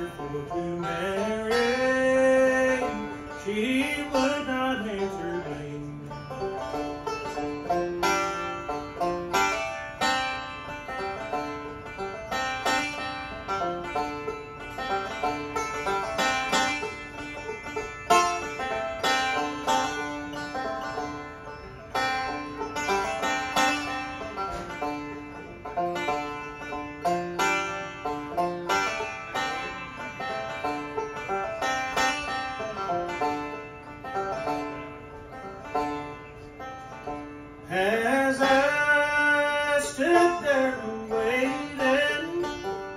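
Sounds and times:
banjo rolling: 0.0 - 42.9
dobro: 0.0 - 42.9
strummed acoustic guitar: 0.0 - 42.9.

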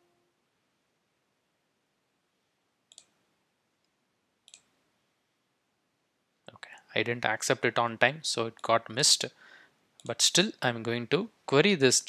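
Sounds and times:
computer mouse clicks: 2.9 - 3.2, 4.5 - 4.7.

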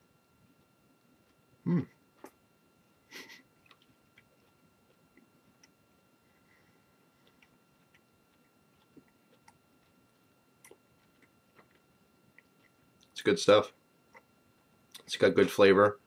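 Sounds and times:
person chewing: 3.2 - 5.8, 6.9 - 13.2.

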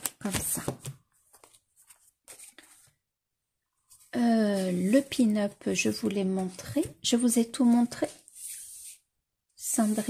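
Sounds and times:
book rustling: 0.0 - 3.0.

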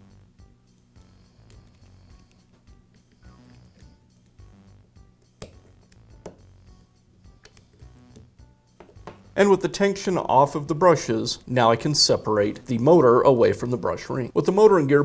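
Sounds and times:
soft background music: 0.0 - 15.0.

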